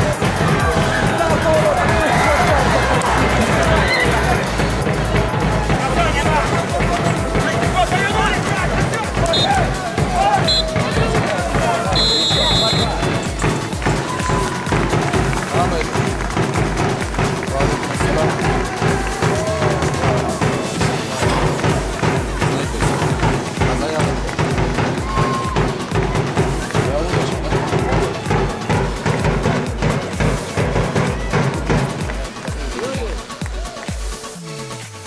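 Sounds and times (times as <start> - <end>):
music with bass beat and singing: 0.0 - 35.0
referee's whistle blowing: 9.2 - 11.2, 11.8 - 13.5.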